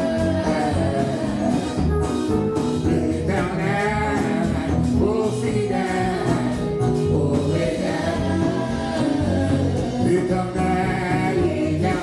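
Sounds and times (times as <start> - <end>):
instrumental accompaniment with bass: 0.0 - 12.0
voices singing gospel song: 0.0 - 12.0.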